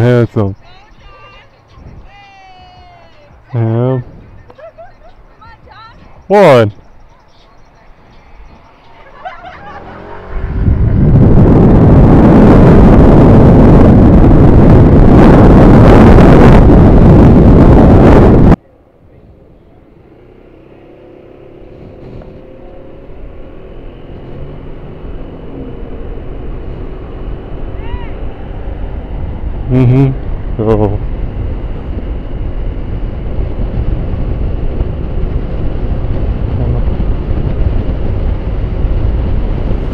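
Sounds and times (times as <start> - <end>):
wind buffeting microphone: 0.0 - 18.6, 21.2 - 39.9
road and engine noise: 0.0 - 39.9.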